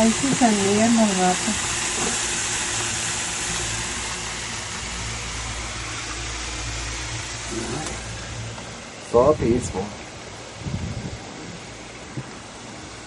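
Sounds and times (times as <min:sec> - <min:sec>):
gondola rushing hiss and hum: 0:00.0 - 0:13.0.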